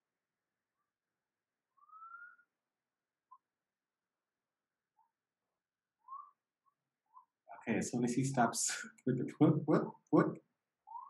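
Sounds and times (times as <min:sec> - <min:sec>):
faint whistle-like chirps: 0:01.7 - 0:02.6, 0:06.0 - 0:06.4.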